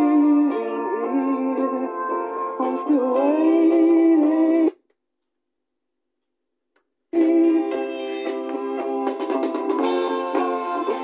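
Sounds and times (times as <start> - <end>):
song with singing from speakers: 0.0 - 4.9, 7.1 - 11.0.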